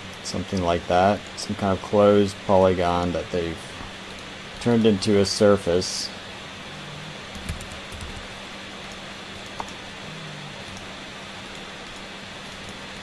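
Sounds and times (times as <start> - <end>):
background hiss and hum: 0.0 - 13.0
keyboard and mouse clicks: 7.3 - 8.3.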